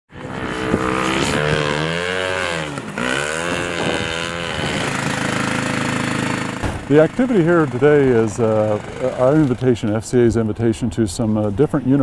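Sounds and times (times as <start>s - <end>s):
small engine revving: 0.1s - 9.6s.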